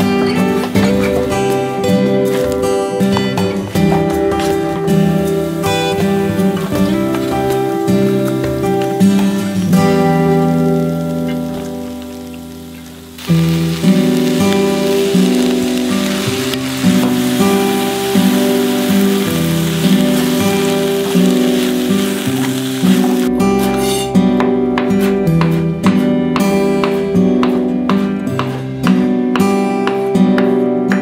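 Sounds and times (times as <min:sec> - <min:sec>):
background music: 0:00.0 - 0:31.0
rice sizzling in a wok: 0:04.2 - 0:23.3.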